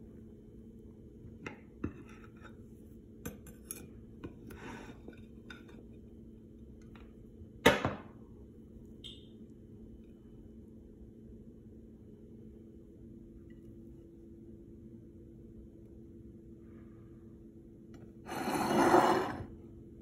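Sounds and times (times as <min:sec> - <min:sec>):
knife scraping plate: 0:18.3 - 0:19.5.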